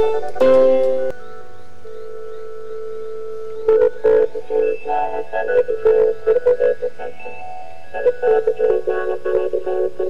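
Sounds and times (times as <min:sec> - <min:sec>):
struck pitched music notes: 0:00.0 - 0:01.5.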